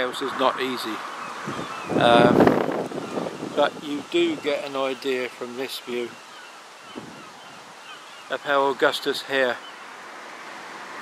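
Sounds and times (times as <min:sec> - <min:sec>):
outdoor background hiss: 0:00.0 - 0:11.0
faint bird chirps: 0:03.0 - 0:08.8.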